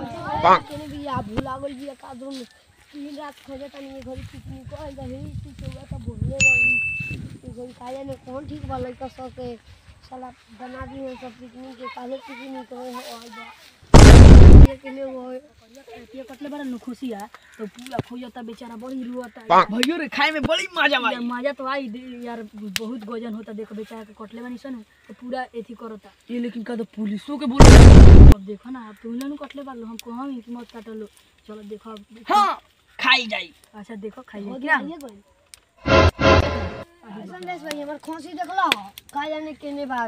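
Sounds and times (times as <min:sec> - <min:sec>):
boy talking: 0:00.0 - 0:06.4, 0:07.3 - 0:13.8, 0:14.7 - 0:27.5, 0:33.8 - 0:35.2, 0:36.9 - 0:40.0
voices: 0:00.0 - 0:13.8
high bell-like ding: 0:06.4 - 0:07.2
loud harsh noise burst: 0:14.0 - 0:14.7, 0:27.6 - 0:28.4, 0:35.8 - 0:36.8.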